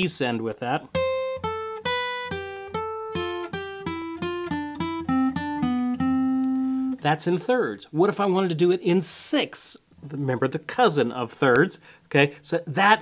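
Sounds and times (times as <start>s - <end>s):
acoustic guitar picked notes: 0.7s - 7.7s.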